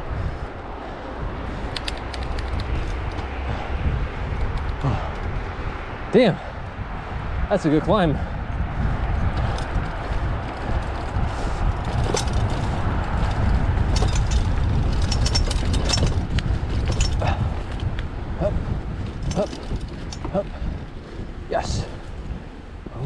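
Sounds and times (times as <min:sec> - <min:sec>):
bike tyres rolling on dirt: 0:00.0 - 0:23.0
wind rumble on microphone: 0:00.0 - 0:23.0
bike clicks and rattles: 0:00.1 - 0:07.2, 0:07.9 - 0:23.0.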